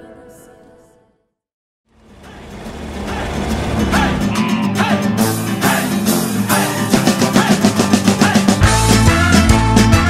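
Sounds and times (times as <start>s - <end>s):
rock music with guitar and drums: 3.2s - 10.0s.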